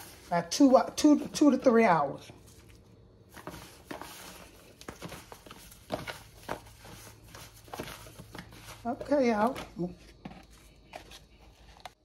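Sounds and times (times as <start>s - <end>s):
plastic gloves crinkling: 0.0s - 12.0s.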